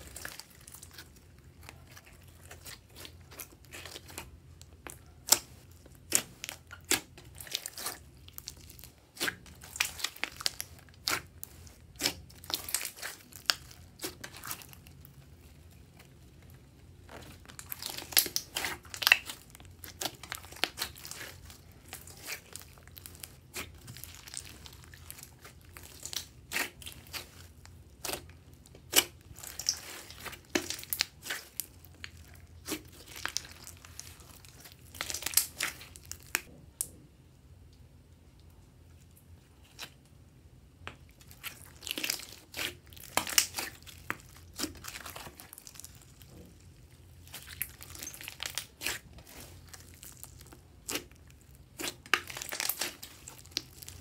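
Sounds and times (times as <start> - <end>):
slime crackling and popping: 0.0 - 36.9, 40.9 - 54.0.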